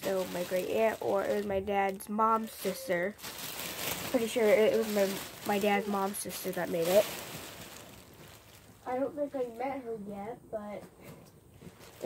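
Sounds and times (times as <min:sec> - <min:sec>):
soft rustling of movement: 0:00.0 - 0:12.0.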